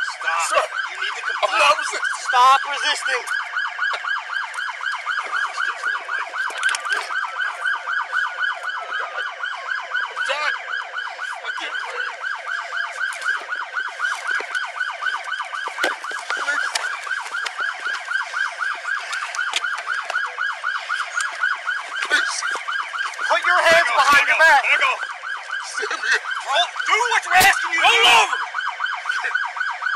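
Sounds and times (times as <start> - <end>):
police siren yelping: 0.0 - 29.9.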